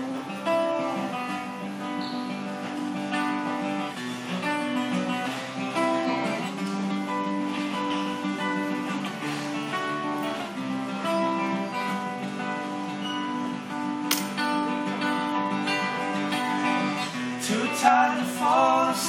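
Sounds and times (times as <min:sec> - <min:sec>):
acoustic guitars playing: 0:00.0 - 0:19.0
man singing: 0:17.1 - 0:19.0.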